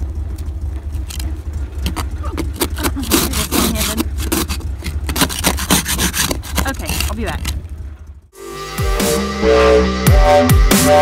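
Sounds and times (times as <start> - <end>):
steady low hum: 0.0 - 10.6
ice scraper scraping ice: 1.9 - 7.5.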